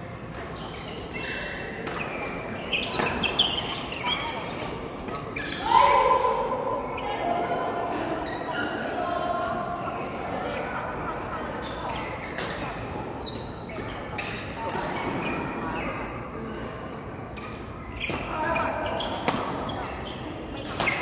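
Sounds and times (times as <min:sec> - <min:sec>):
rackets hitting shuttlecock: 0:19.1 - 0:19.6.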